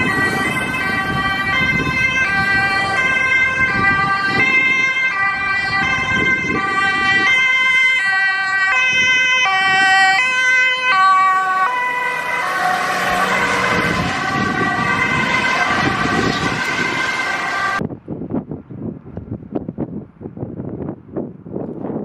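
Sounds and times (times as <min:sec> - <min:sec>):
ambulance two-tone siren: 0:00.0 - 0:17.8
engine and road noise: 0:00.0 - 0:22.0.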